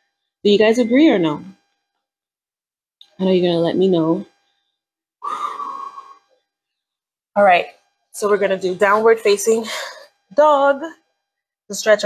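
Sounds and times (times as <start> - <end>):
woman sighing: 5.2 - 6.1.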